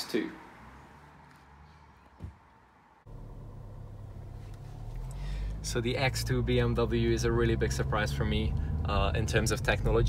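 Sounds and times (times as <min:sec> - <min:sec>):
short thump: 0:02.1 - 0:02.5
car cabin engine rumble: 0:03.1 - 0:10.0.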